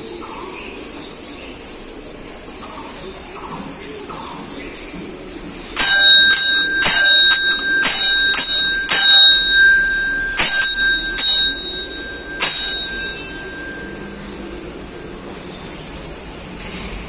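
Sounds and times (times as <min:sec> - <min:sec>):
brass bell ringing: 0:05.8 - 0:15.2.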